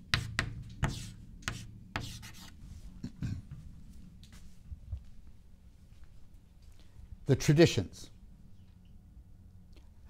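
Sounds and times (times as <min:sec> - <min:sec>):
chalk writing on a chalkboard: 0:00.0 - 0:02.6.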